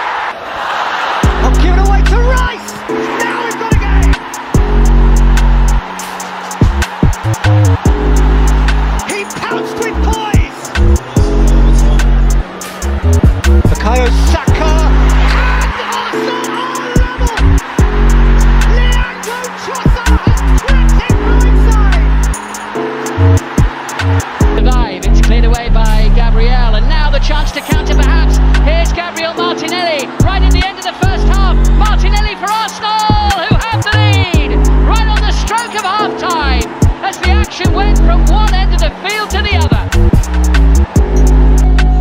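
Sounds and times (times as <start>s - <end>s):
heavy bass line: 1.2s - 2.6s, 3.7s - 5.9s, 6.6s - 9.0s, 10.0s - 15.8s, 17.0s - 19.0s, 19.9s - 22.4s, 23.2s - 29.0s, 30.0s - 32.3s, 33.1s - 35.5s, 36.4s - 42.0s
wavering melodic lines: 1.3s - 33.0s.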